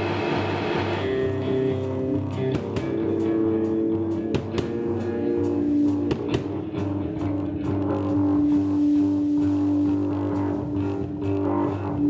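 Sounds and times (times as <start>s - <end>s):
bass guitar: 0.0s - 12.0s
drum kit with cymbals and snare: 0.0s - 12.0s
electric guitar ringing chord: 0.0s - 12.0s.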